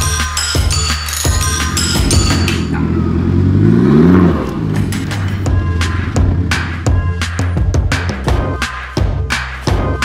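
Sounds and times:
music: 0:00.0 - 0:10.0
diesel engine revving: 0:01.3 - 0:08.3.

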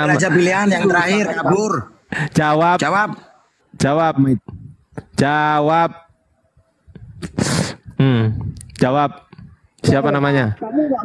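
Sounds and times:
man blowing into headset microphone: 0:07.0 - 0:08.6.

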